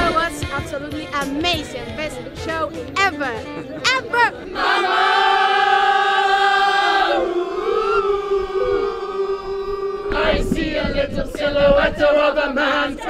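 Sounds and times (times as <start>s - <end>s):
people singing a held note: 5.4s - 13.0s.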